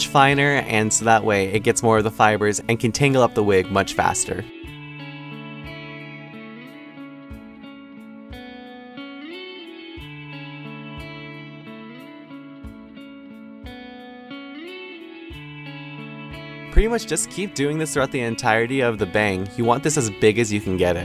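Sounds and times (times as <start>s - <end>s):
guitar background music: 0.0s - 21.0s.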